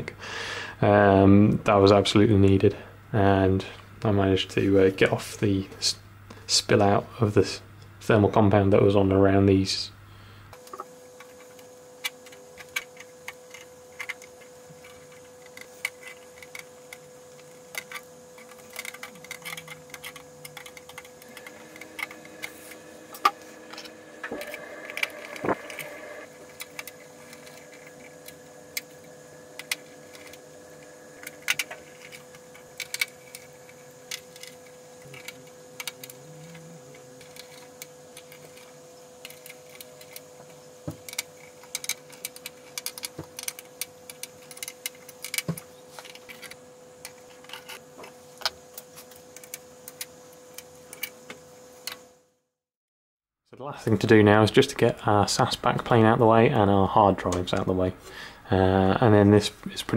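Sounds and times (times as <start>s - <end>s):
faint steady hum: 0.0s - 52.4s, 53.5s - 59.9s
metal and plastic parts clicking: 10.6s - 22.6s, 23.2s - 29.0s, 31.2s - 40.2s, 40.9s - 47.8s.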